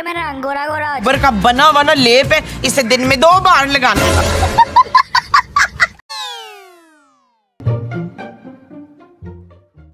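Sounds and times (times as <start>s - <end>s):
falling pitched sound effect: 6.1s - 8.1s.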